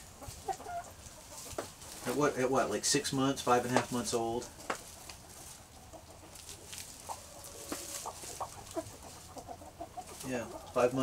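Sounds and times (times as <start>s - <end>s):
chickens clucking softly: 0.0s - 11.0s.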